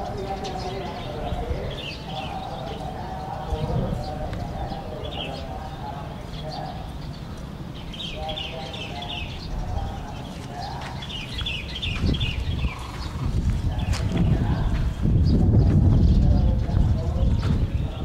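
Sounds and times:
low rumbling microphone noise: 0.0s - 18.0s
small birds chirping: 0.0s - 18.0s.

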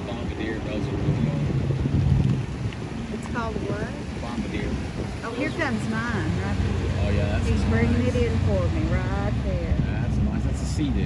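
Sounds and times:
jet ski engines humming: 0.0s - 11.0s
wind buffeting microphone: 0.0s - 11.0s.

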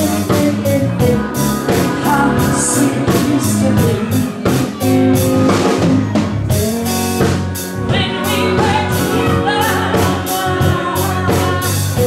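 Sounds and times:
saxophone long notes: 0.0s - 6.0s
bass and guitar: 0.0s - 12.0s
drum kit beat: 0.0s - 12.0s.

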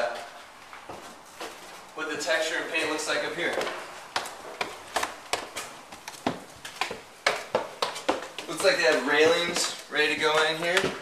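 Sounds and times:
footsteps climbing stairs: 0.0s - 11.0s.

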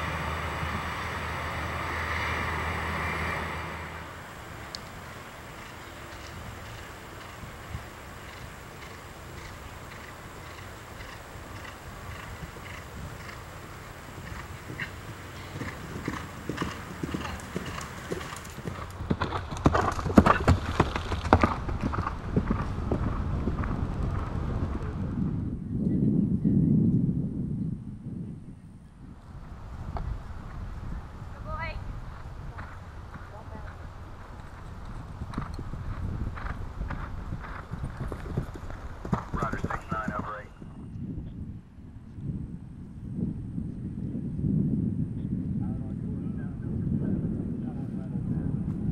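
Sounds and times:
horse galloping on turf: 4.2s - 25.2s, 29.9s - 40.8s.

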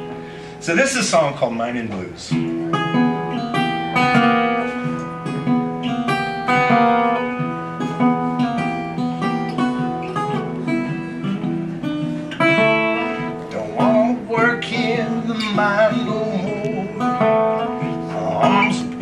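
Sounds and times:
blues guitar picking: 0.0s - 19.0s.

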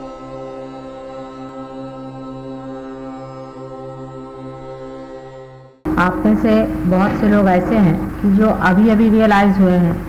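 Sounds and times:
chanted mantra low drone: 0.0s - 10.0s.

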